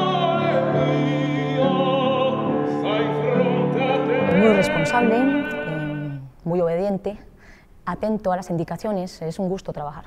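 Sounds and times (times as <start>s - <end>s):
operatic male voice singing: 0.0s - 6.2s
woman humming: 4.2s - 6.4s.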